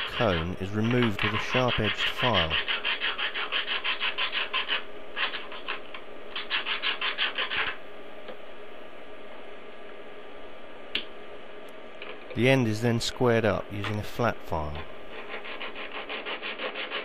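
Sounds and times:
file rasping on glass: 0.0 - 7.8, 15.1 - 17.0.

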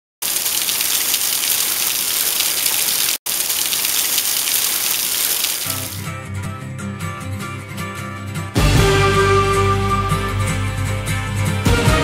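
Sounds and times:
waterfall spray hissing on rocks: 0.2 - 6.0
guitar music: 5.7 - 12.0.

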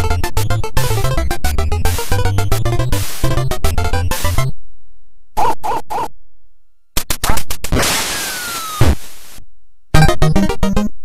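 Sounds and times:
game dog barks: 5.4 - 6.2
game landing thump: 7.3 - 9.1
game gunshot noise burst: 7.7 - 9.4
falling whistle: 8.1 - 8.9.

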